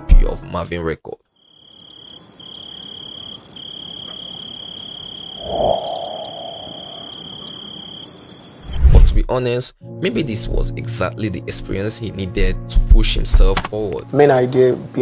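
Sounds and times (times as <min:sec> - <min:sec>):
crickets chirping: 0:01.4 - 0:08.8.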